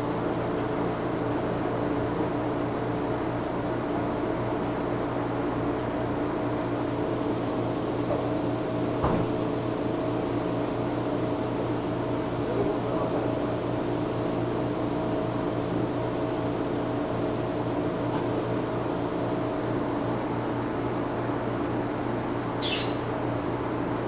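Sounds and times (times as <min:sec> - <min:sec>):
aquarium equipment humming: 0:22.6 - 0:23.6.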